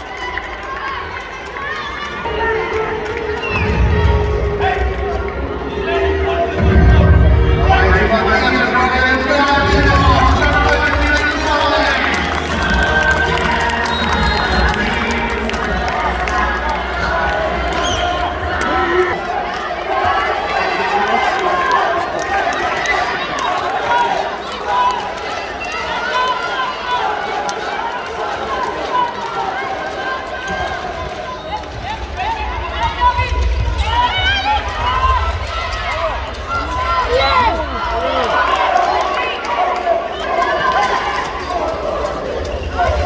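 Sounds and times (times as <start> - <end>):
players and crowd shouting: 0.0 - 43.0.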